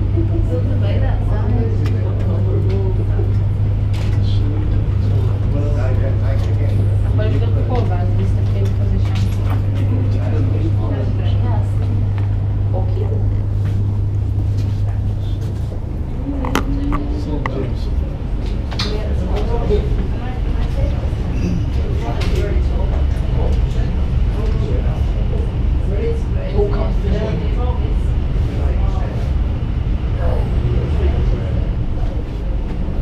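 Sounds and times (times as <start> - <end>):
people talking indistinctly: 0.0 - 32.6
steady low hum: 0.0 - 33.0.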